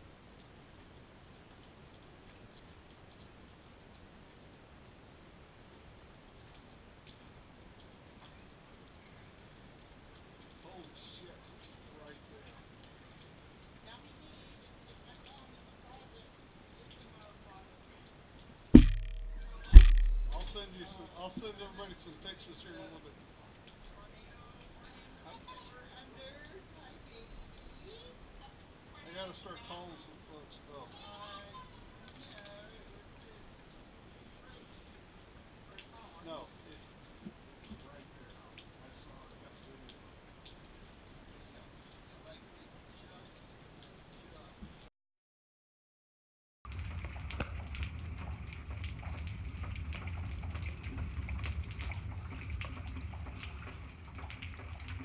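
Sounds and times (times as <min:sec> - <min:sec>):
steady low hiss: 0:17.9 - 0:25.2
loud thumps with low boom: 0:18.8 - 0:20.8.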